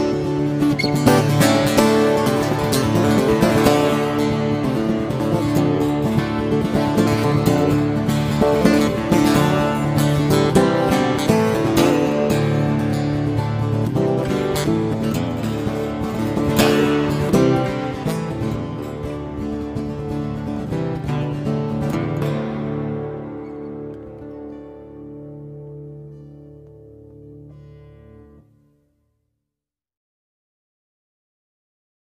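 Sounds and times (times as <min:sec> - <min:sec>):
strummed acoustic guitar music: 0:00.0 - 0:28.8.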